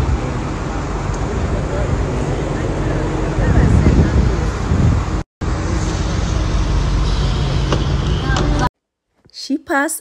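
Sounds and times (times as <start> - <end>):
loud low rumbling: 0.0 - 8.7.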